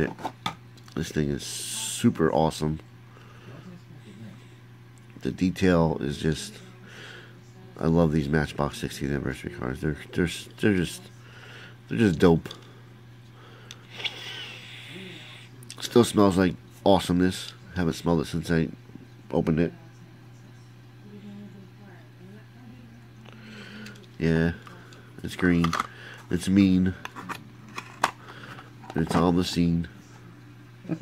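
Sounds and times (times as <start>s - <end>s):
person sniffing: 13.9s - 15.5s.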